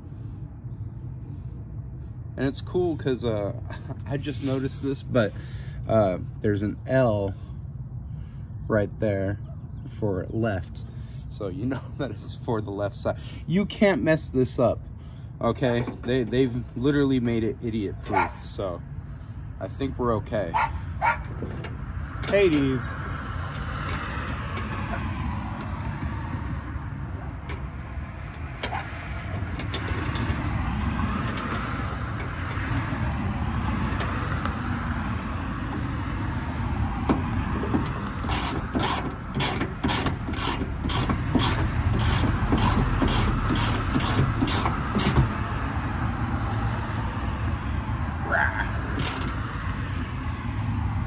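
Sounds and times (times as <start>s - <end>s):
road traffic rumble: 0.0s - 51.0s
ratchet wrench clicking: 37.8s - 45.3s, 48.9s - 49.5s.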